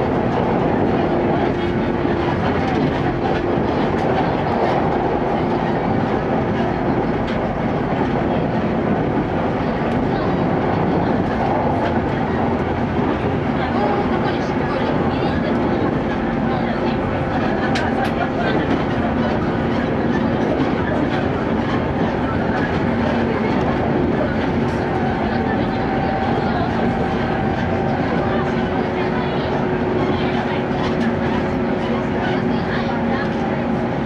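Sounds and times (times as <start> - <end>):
train wheels rolling on rail: 0.0 - 34.0.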